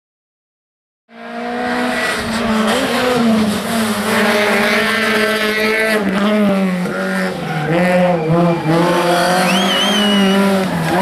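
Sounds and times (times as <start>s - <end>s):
rally car engine revving: 1.1s - 11.0s.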